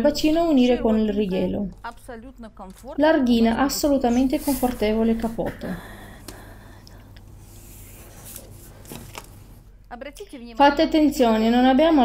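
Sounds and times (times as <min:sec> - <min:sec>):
low electrical hum: 0:00.0 - 0:12.0
marker scratching on paper: 0:04.0 - 0:05.4.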